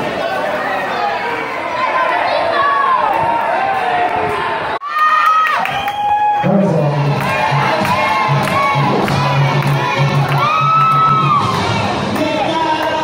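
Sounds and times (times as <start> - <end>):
crowd cheering and shouting: 0.0 - 13.0
children shouting: 0.2 - 5.7.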